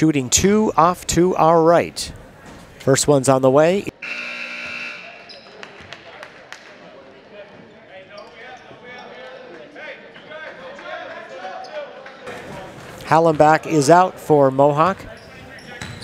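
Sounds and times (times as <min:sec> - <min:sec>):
crowd chatter: 0:00.1 - 0:16.0.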